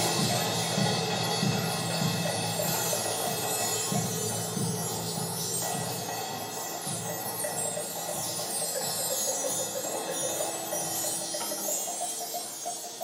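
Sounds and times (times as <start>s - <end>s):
bell-like notes: 0.0s - 13.0s
children's percussion ensemble: 0.0s - 13.0s.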